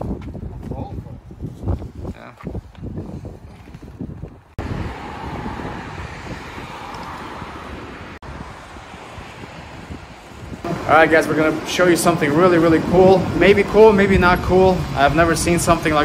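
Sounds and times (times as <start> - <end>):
wind buffeting microphone: 0.0 - 16.0
street traffic: 4.3 - 16.0.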